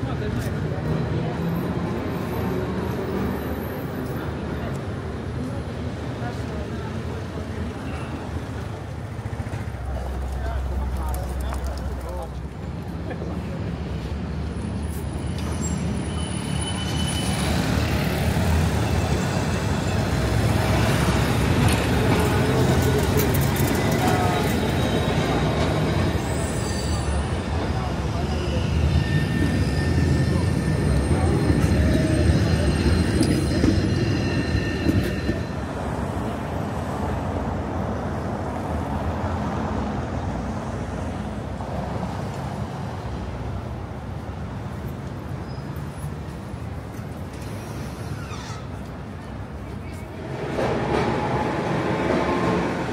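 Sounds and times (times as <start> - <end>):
city street traffic: 0.0 - 52.9
tram passing: 0.0 - 52.9.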